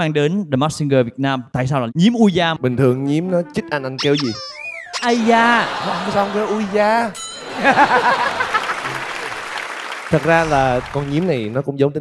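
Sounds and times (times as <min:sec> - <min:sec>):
audience laughter: 0:05.0 - 0:11.6
audience applauding: 0:05.0 - 0:11.7.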